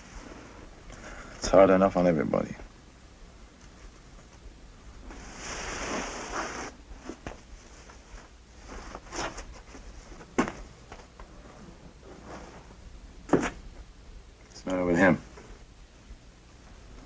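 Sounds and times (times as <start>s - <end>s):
rustling or scraping: 3.6s - 13.6s.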